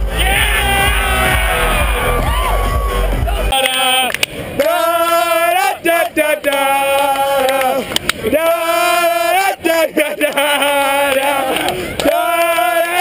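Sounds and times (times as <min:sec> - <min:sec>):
men singing chant-like tune: 0:03.7 - 0:13.0.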